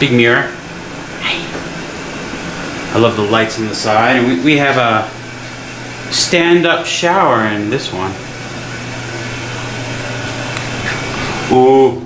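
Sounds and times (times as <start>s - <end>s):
ventilation fan running: 0.0s - 12.0s.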